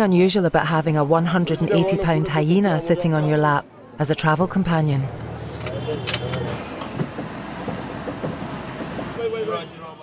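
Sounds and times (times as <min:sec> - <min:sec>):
road noise: 0:01.0 - 0:10.0.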